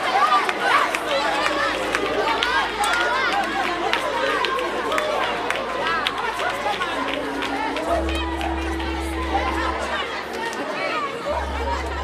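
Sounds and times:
crowd talking and calling out: 0.0 - 12.0.

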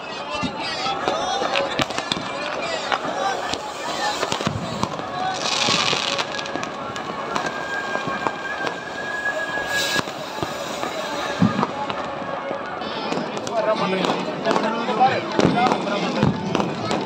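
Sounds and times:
firecrackers banging: 0.3 - 17.0
thin steady whistle: 5.9 - 11.4
hissing burst: 7.4 - 11.8.

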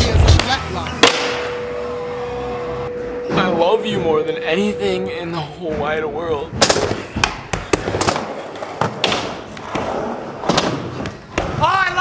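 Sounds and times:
skateboard rolling: 7.6 - 11.7.

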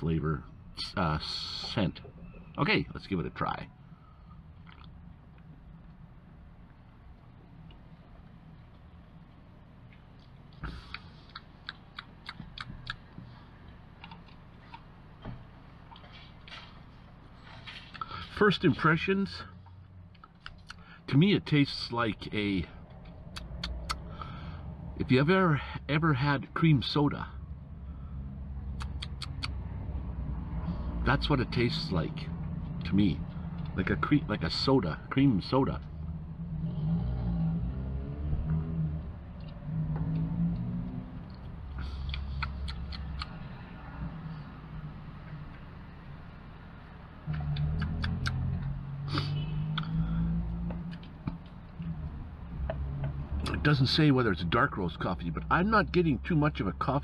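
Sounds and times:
low steady hum: 0.0 - 57.0
lip smacks and tongue clicks: 4.6 - 5.5, 9.9 - 13.3, 20.1 - 20.8, 23.3 - 24.1, 28.8 - 29.6, 40.6 - 43.6, 47.3 - 48.5.

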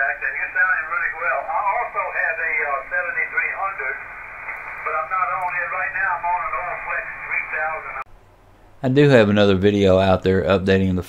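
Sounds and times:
thin radio voice from speaker: 0.0 - 8.0.

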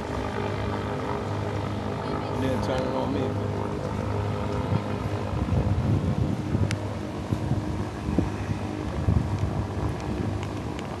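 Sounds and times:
low engine hum: 0.0 - 11.0
wind rumble on microphone: 0.0 - 11.0.

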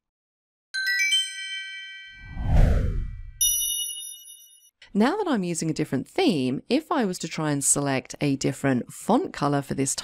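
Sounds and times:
bright bell-like chimes: 0.8 - 2.3, 3.4 - 4.7
whoosh falling into low rumble: 2.2 - 3.4
high shimmering ding: 3.4 - 4.7.

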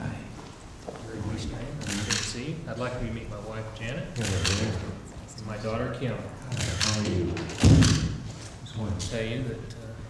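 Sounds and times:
loud low thump: 7.6 - 8.3.

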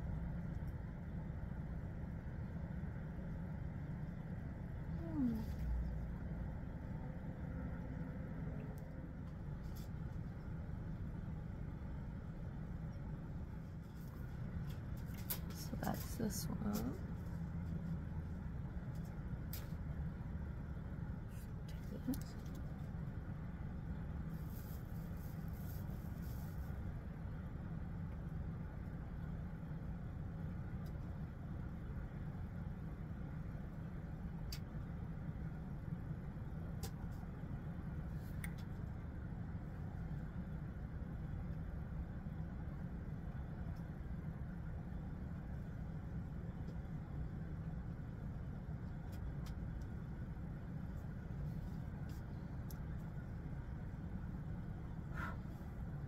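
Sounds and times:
low background rumble: 0.0 - 56.0.

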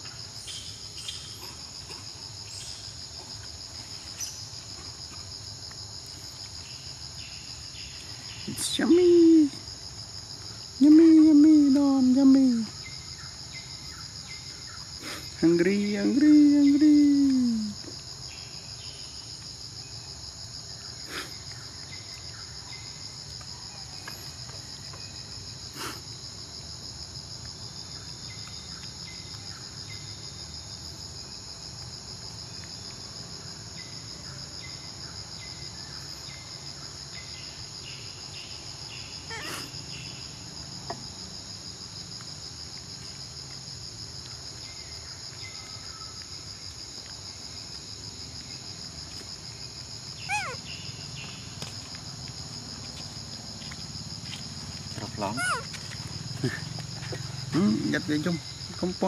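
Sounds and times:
insects buzzing: 0.0 - 59.0.

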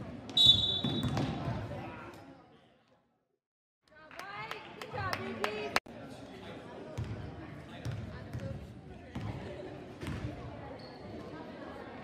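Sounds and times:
murmur of voices: 5.0 - 12.0.

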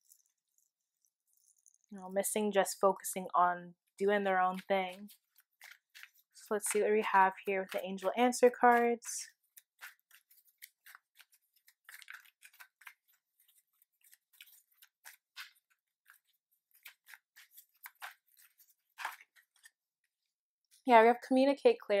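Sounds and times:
cards being shuffled: 4.5 - 6.8, 7.4 - 19.9.

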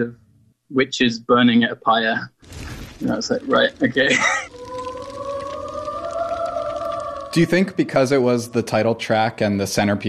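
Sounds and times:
long held musical tone: 3.8 - 9.4.

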